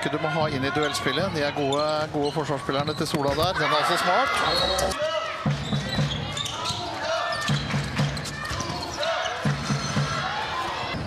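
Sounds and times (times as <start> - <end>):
crowd voices: 0.0 - 11.0
shoe squeaks: 0.7 - 3.6, 5.6 - 10.0
ball bouncing on court: 2.8 - 3.6.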